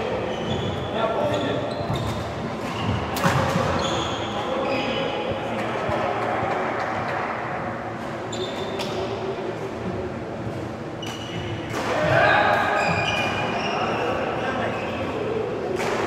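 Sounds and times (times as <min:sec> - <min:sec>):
shoes squeaking on court floor: 0:00.0 - 0:05.5, 0:07.9 - 0:09.2, 0:10.9 - 0:15.0.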